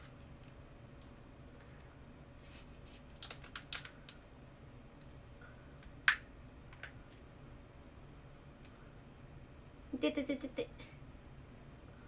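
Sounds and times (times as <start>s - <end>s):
crab shell cracking: 3.2s - 4.2s.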